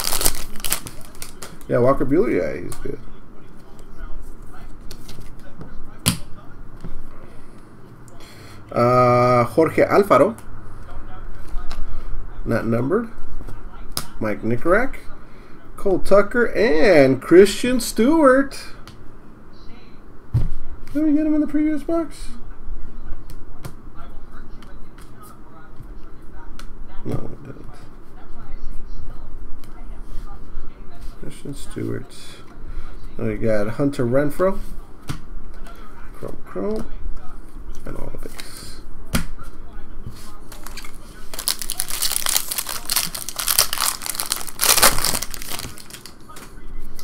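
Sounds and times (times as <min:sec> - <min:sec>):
trading cards clicking and rustling: 0:40.5 - 0:46.5.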